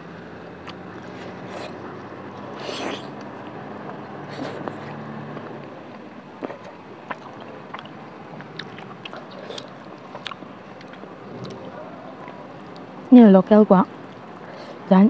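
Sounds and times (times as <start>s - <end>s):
person chewing food: 0.6s - 5.5s, 6.4s - 11.7s.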